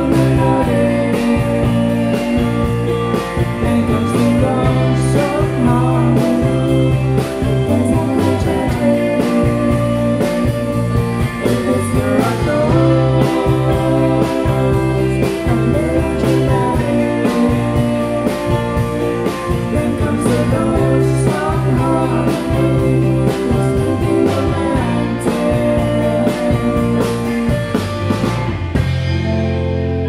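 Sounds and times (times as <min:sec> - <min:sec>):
bass guitar: 0:00.0 - 0:30.0
drum kit steady beat: 0:00.0 - 0:30.0
electric guitars: 0:00.0 - 0:30.0
keyboard: 0:00.0 - 0:30.0.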